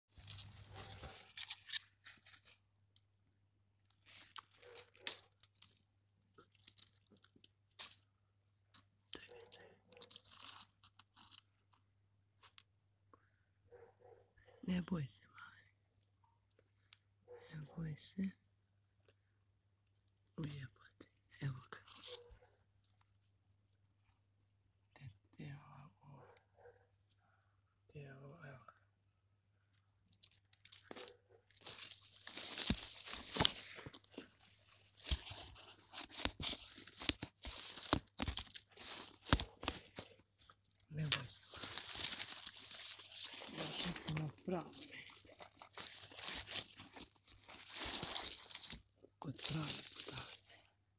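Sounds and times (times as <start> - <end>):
dry leaves and twigs crackling: 0.1 - 3.0, 3.8 - 11.4, 29.7 - 50.6
twigs snapping: 3.9 - 8.1, 29.7 - 48.8.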